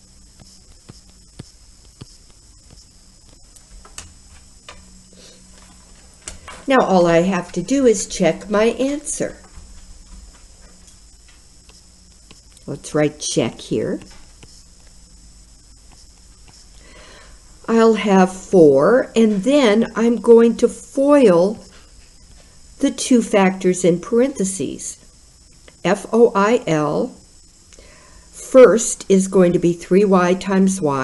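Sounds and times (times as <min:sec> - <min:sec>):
faint steady hum: 0:00.0 - 0:31.0
stylus clicking on pen tablet: 0:00.4 - 0:04.9, 0:11.3 - 0:12.7.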